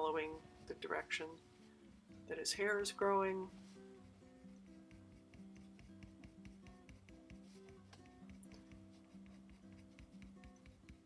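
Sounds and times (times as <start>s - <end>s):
soft background music: 0.0s - 11.0s
colored pencil scratching on paper: 3.4s - 11.0s.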